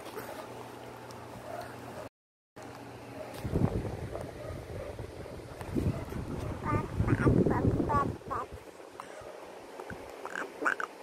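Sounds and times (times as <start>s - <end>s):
baby babbling: 6.6s - 8.5s.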